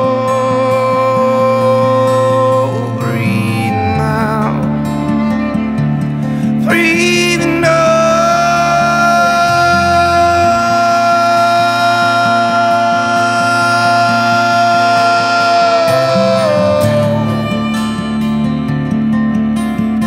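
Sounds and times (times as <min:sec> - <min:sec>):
acoustic guitar picking: 0:00.0 - 0:20.0
cello low notes: 0:00.0 - 0:20.0
violin: 0:00.0 - 0:20.0.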